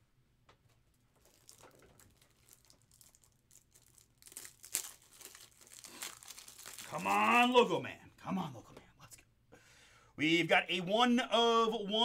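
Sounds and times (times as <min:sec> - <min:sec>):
plastic packaging crinkling: 0:00.8 - 0:07.7.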